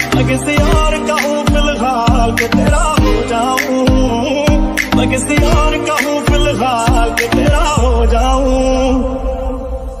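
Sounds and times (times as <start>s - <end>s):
steady low bass: 0.0s - 10.0s.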